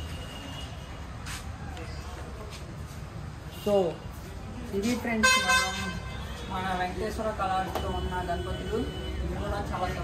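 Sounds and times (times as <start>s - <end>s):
vehicle horn honk: 5.2s - 6.6s.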